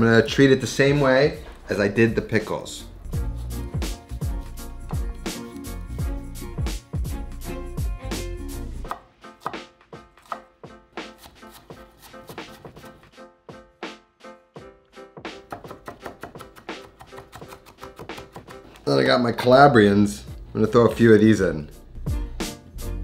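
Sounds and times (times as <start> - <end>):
background music: 0.0 - 23.0
knife chopping on wooden board: 8.9 - 13.0, 15.4 - 18.8.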